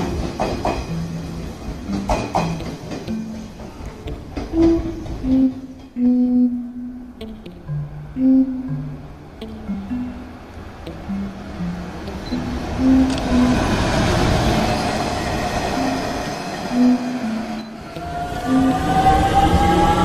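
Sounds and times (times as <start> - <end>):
train rushing rail noise: 0.0 - 6.2, 10.3 - 20.0
slow background music: 0.0 - 20.0.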